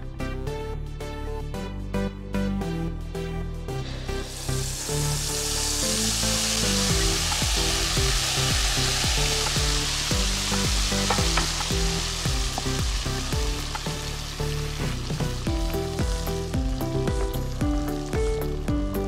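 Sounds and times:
instrumental music: 0:00.0 - 0:19.0
batter sizzling in ghee: 0:03.9 - 0:19.0.

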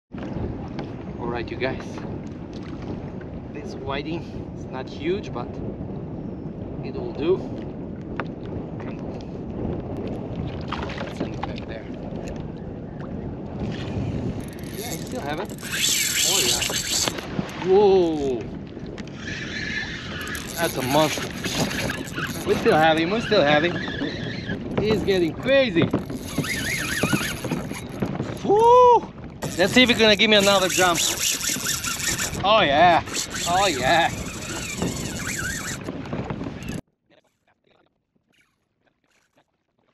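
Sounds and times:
wind: 0:00.0 - 0:39.9
water noise: 0:00.1 - 0:39.9
person whooping: 0:28.4 - 0:29.1.

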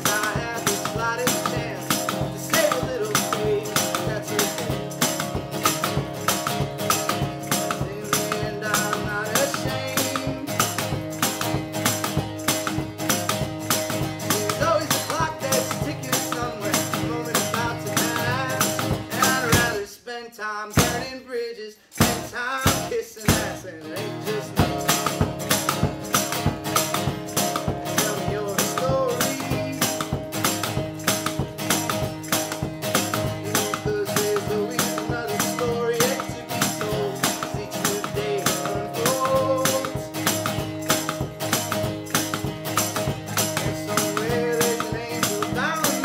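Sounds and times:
suitcase kick drum beat: 0:00.0 - 0:19.8, 0:20.8 - 0:21.1, 0:22.0 - 0:23.6, 0:24.4 - 0:46.0
acoustic guitar strumming: 0:00.0 - 0:20.0, 0:20.7 - 0:46.0.

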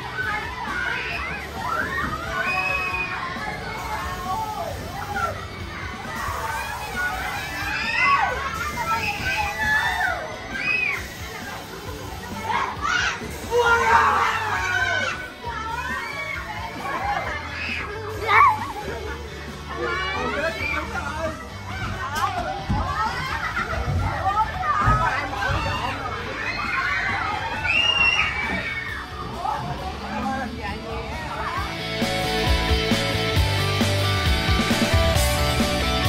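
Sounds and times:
children shouting and shrieking: 0:00.0 - 0:33.4
music playing: 0:00.0 - 0:36.0.

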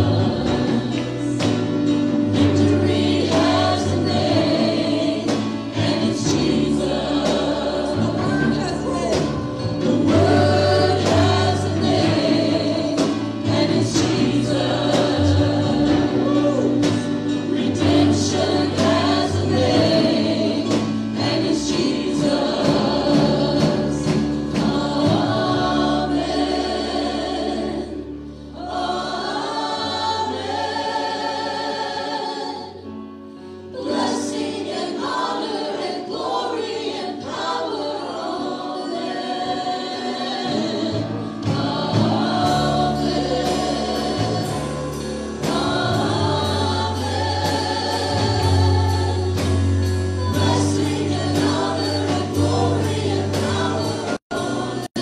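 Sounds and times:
band with bass and drums: 0:00.0 - 0:27.9, 0:40.5 - 0:55.0
people singing together: 0:00.0 - 0:55.0.

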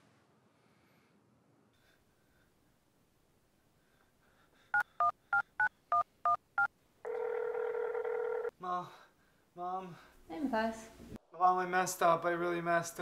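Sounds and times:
phone ringing tone: 0:07.0 - 0:08.6.

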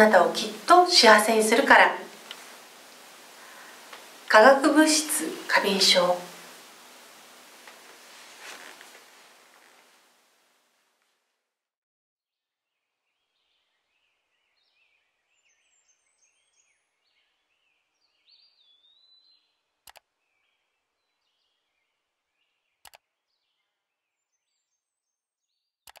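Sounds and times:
small birds chirping: 0:13.0 - 0:26.0
sharp clicks: 0:19.8 - 0:20.1, 0:22.8 - 0:23.0.

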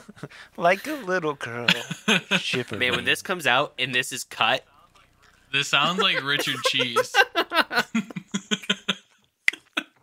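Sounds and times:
people laughing: 0:01.7 - 0:03.2, 0:05.8 - 0:09.8.

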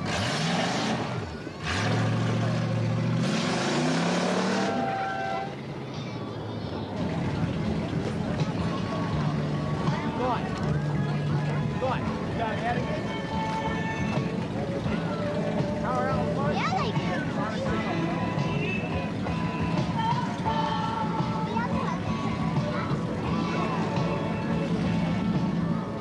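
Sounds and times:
car engine revving hard: 0:00.0 - 0:05.3
crowd voices: 0:00.0 - 0:26.0.

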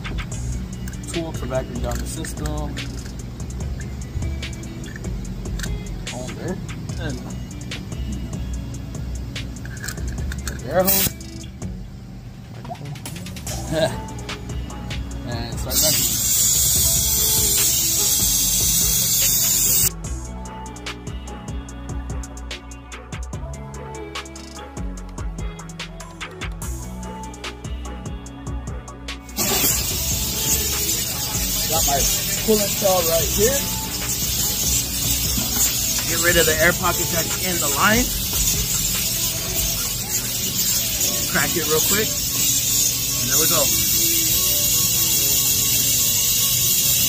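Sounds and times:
compressed air hissing: 0:10.8 - 0:11.2, 0:15.7 - 0:20.0, 0:29.2 - 0:47.0.

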